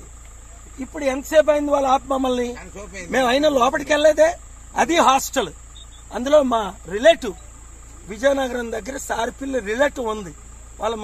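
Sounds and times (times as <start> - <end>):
crickets chirping: 0.0 - 11.0
man talking: 0.5 - 11.0.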